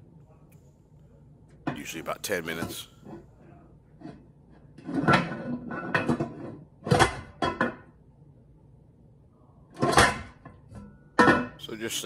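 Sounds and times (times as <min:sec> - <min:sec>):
metal lid scraping and knocking: 0:04.8 - 0:07.8.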